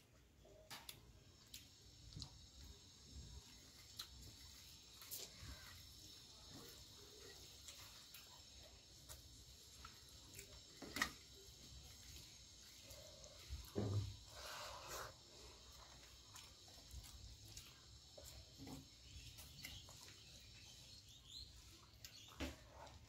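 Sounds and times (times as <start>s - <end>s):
thump: 13.7s - 14.1s.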